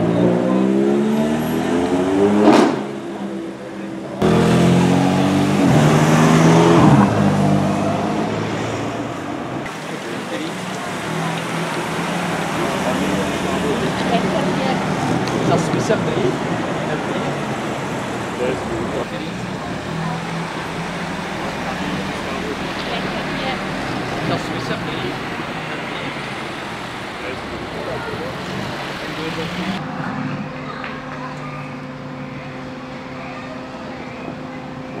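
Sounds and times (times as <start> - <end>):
car engines in slow traffic: 0.0 - 35.0
crowd chatter: 0.0 - 35.0.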